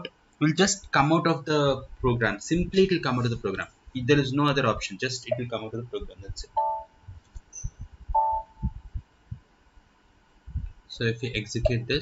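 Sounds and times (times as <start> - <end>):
soft low thumps: 4.6 - 12.0
electronic alert tone: 6.6 - 6.9, 7.6 - 8.7.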